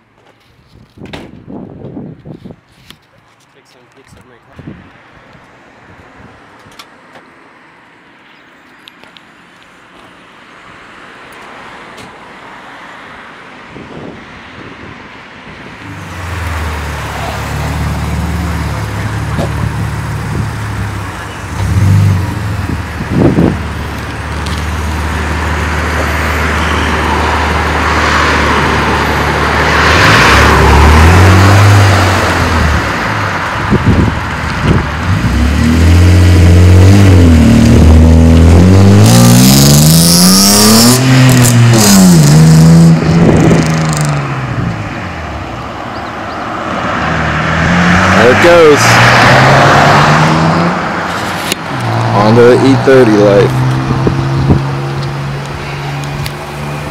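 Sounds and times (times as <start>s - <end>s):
car accelerating through gears: 46.9s - 55.5s.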